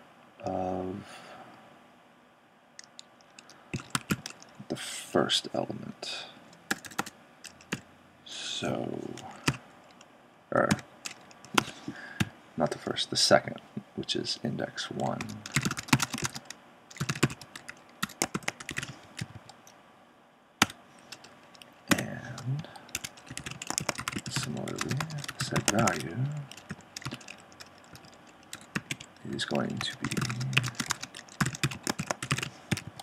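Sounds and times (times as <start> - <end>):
typing on computer keyboard: 2.8 - 4.6, 6.7 - 7.8, 9.2 - 9.6, 10.7 - 12.3, 15.2 - 19.7, 20.6 - 33.0.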